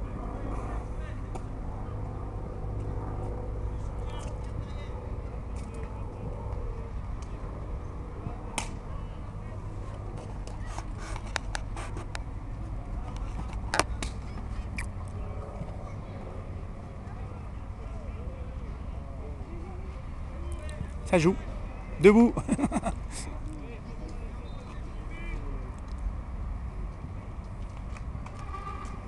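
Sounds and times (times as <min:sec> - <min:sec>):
distant voices: 0:00.0 - 0:29.0.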